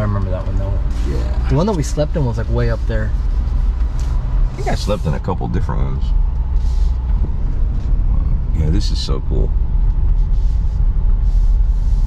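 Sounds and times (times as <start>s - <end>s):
car engine droning: 0.0s - 12.0s
tyre and road noise: 0.0s - 12.0s.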